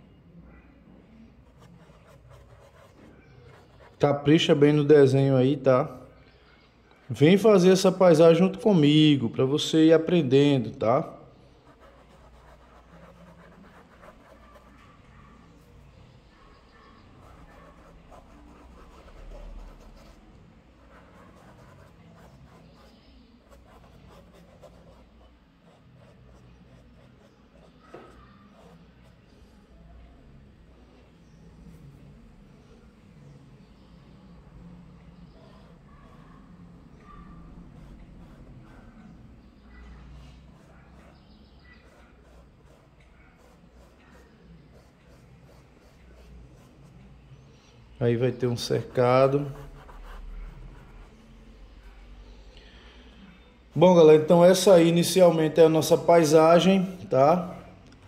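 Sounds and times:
paintbrush scratching on canvas: 1.4 - 4.3, 11.6 - 29.5, 35.4 - 39.4, 40.4 - 47.5, 48.3 - 52.0.

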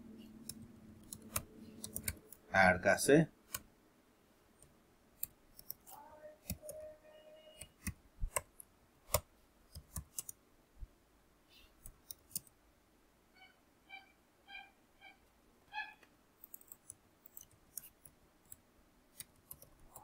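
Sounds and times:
keyboard keystrokes clicking: 0.4 - 2.4
faint drawn-out pitched tone: 5.9 - 7.8, 13.3 - 16.1.

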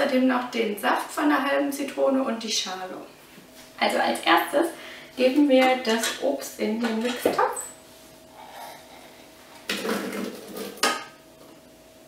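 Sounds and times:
kitchenware clattering and scraping: 5.5 - 6.3, 9.6 - 11.1.

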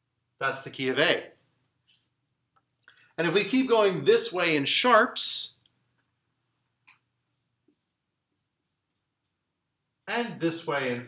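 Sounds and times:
marker squeaking on whiteboard: 6.8 - 9.5.

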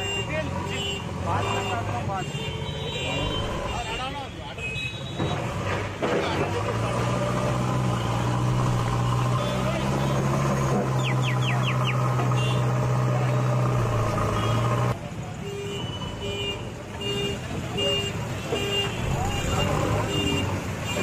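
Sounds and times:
voices: 0.0 - 21.0
diesel engine running: 6.4 - 15.0.

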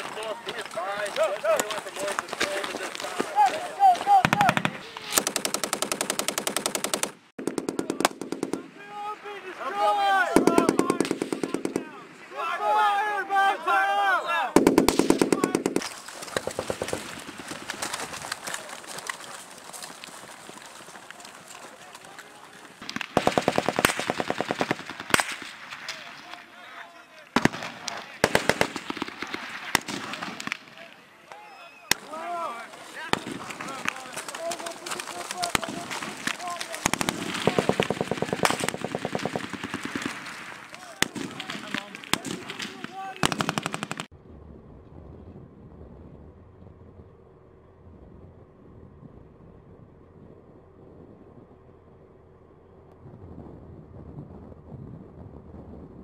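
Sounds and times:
voices calling out: 0.0 - 5.5, 7.8 - 16.9, 17.5 - 23.8, 24.7 - 44.1
automatic gunfire bursts: 4.2 - 8.6, 10.4 - 11.8, 14.6 - 15.8, 22.8 - 25.5, 27.4 - 30.4, 36.8 - 44.1
single sharp gunshots: 14.6 - 15.9, 35.6 - 44.1.

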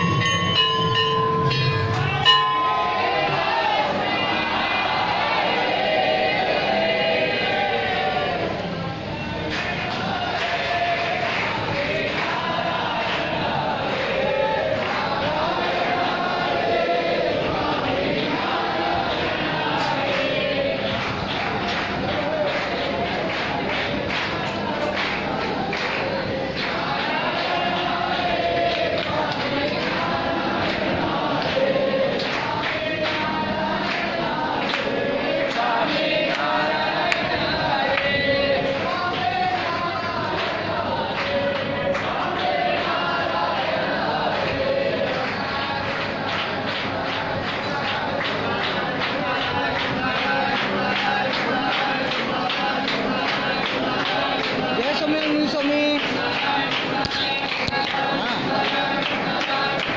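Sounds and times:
percussive strikes: 0.0 - 3.6
group of voices singing: 0.0 - 59.9.

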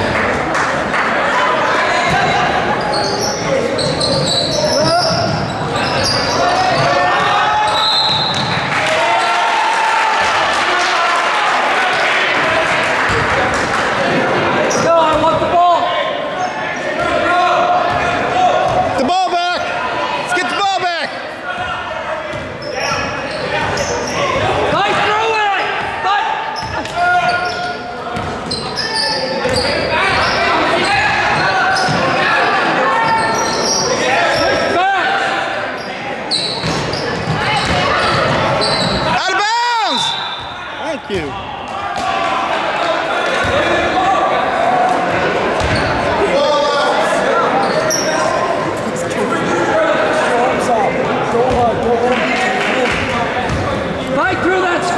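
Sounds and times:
sneakers squeaking: 2.1 - 8.7, 21.6 - 25.1, 26.5 - 32.2, 32.9 - 34.7, 35.7 - 39.3, 44.8 - 46.2, 47.4 - 48.4, 52.9 - 54.0
basketball bouncing: 36.6 - 39.0, 45.6 - 45.9, 52.9 - 53.7.

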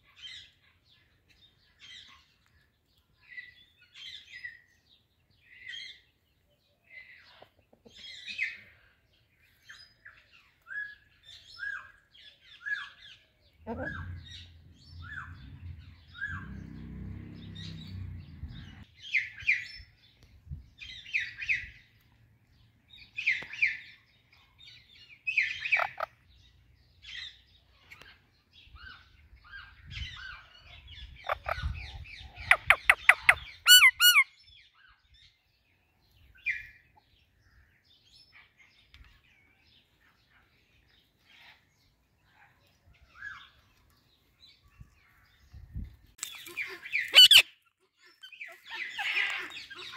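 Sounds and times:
parakeets chirping and squawking: 13.7 - 18.9, 25.4 - 26.2, 31.1 - 34.2, 46.2 - 49.9
loud rapid parakeet screeches: 32.5 - 34.3, 46.8 - 47.6.

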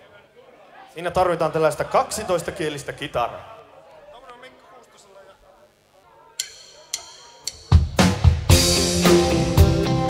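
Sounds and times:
drumstick count-in clicks: 6.4 - 8.0
rock band playing: 6.4 - 10.0.

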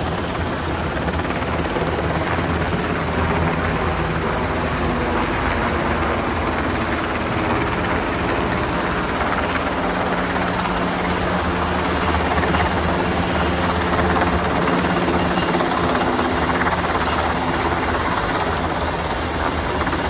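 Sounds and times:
helicopter flying overhead: 0.0 - 20.0.

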